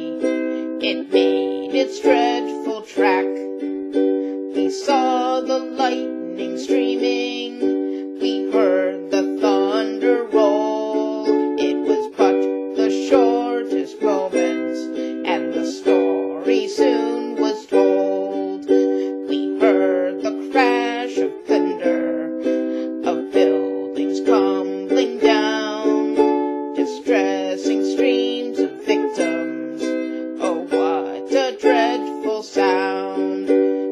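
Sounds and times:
woman singing folk ballad: 0.0s - 3.6s, 4.2s - 33.9s
ukulele strumming: 0.0s - 33.9s.

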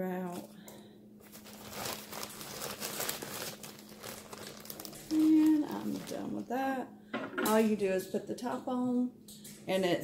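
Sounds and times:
crumpled paper crinkling: 1.2s - 6.6s.

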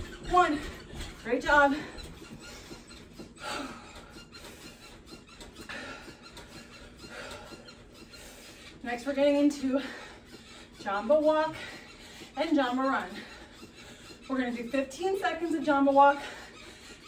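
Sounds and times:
faint squeaks: 0.0s - 17.0s
woman breathing hard: 1.8s - 8.8s, 9.7s - 14.2s, 16.2s - 17.0s.

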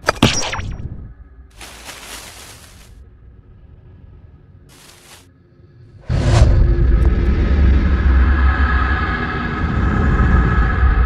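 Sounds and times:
deep rumble: 0.9s - 11.0s.

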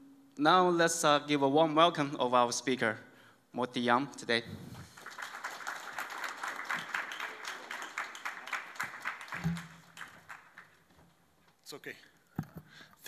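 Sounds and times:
audience applauding: 4.8s - 11.0s.

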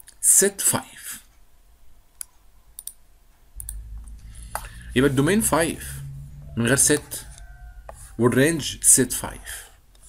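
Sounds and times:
low hum: 3.5s - 10.0s.

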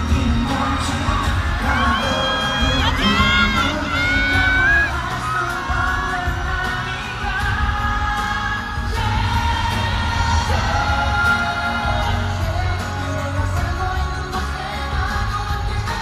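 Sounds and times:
crowd screaming shrilly: 0.0s - 12.4s
live pop music with singing: 0.0s - 16.0s.

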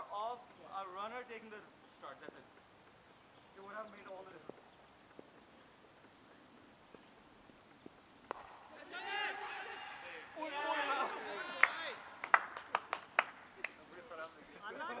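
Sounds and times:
voices calling out: 8.3s - 15.0s.

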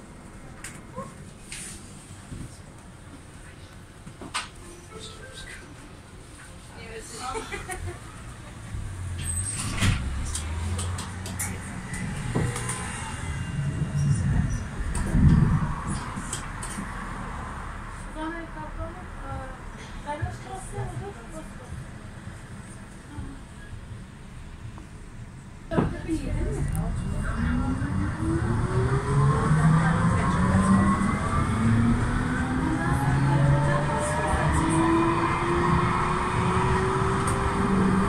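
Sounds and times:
tram rumbling along rails: 0.0s - 38.0s.

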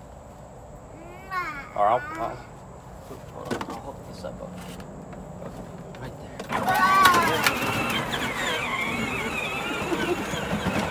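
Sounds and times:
electric toy motors whining: 6.5s - 10.9s.

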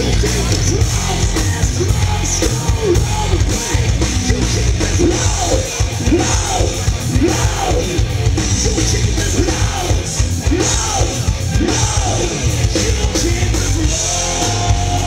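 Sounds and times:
live hard rock band: 0.0s - 15.0s.

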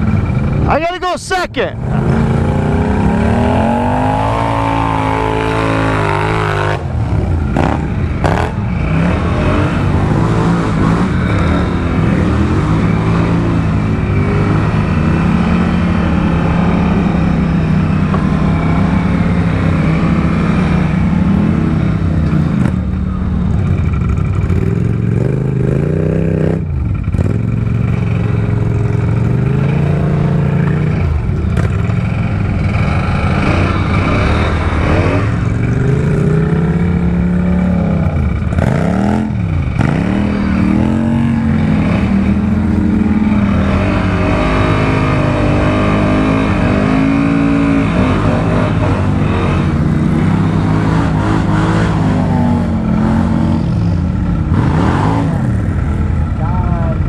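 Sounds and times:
quad engines revving in mud: 1.7s - 57.0s.

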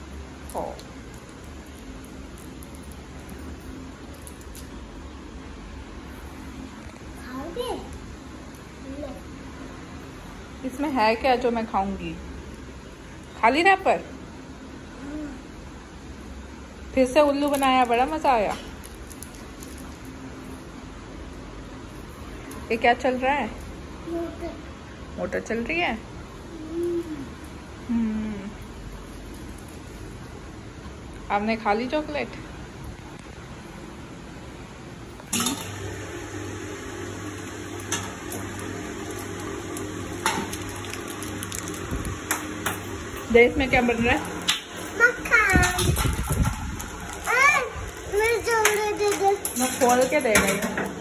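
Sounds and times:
person humming softly: 27.9s - 28.6s
electric churner motor humming: 35.3s - 51.0s
cream sloshing: 37.3s - 42.6s.

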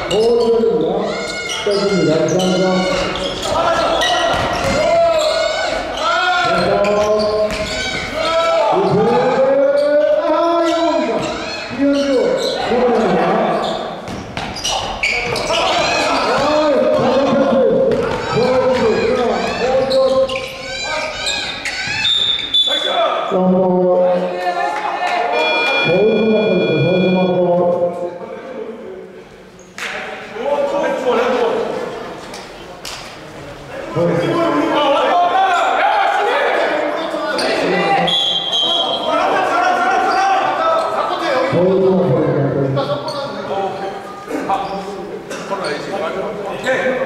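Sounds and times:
sneakers squeaking on court: 0.0s - 9.1s, 9.8s - 17.2s, 17.9s - 22.8s
men calling out and talking: 0.0s - 32.2s, 33.6s - 47.0s
players shouting: 0.1s - 13.8s, 14.6s - 23.3s, 34.0s - 41.6s
basketball bouncing: 4.3s - 4.9s, 6.4s - 8.1s, 14.0s - 17.1s, 17.8s - 19.0s
referee whistle: 22.0s - 23.0s, 25.3s - 27.4s, 38.0s - 39.2s.

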